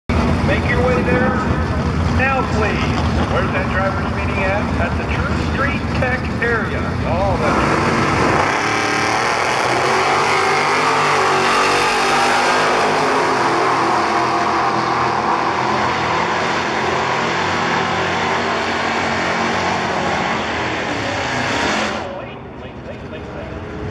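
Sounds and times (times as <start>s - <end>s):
drag car engines at full throttle: 0.1s - 23.9s.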